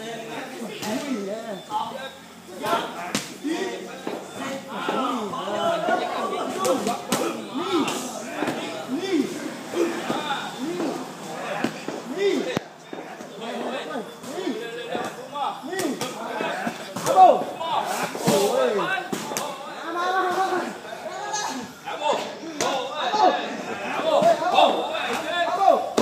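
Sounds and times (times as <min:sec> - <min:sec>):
indistinct voices: 0:00.0 - 0:26.0.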